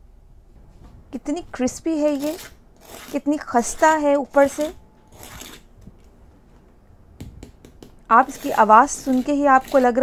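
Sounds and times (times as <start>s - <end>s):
fork scraping bread crust: 2.1s - 5.7s, 8.1s - 10.0s.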